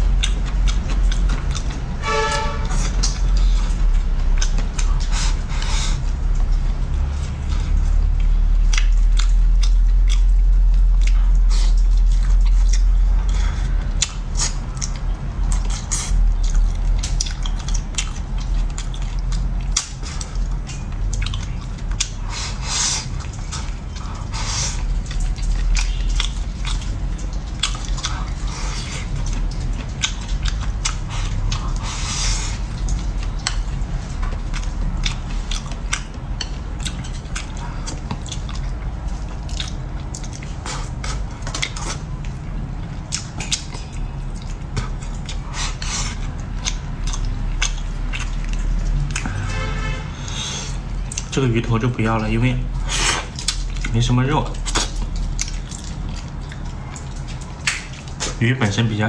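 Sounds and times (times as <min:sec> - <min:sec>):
person chewing: 0:00.0 - 0:58.4
mouth clicks and smacks: 0:02.7 - 0:49.4, 0:50.2 - 0:51.4, 0:52.8 - 0:58.4.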